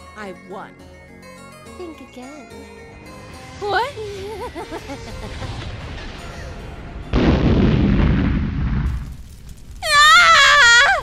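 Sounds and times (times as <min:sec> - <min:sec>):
explosion blast and rumble: 0:03.1 - 0:09.9.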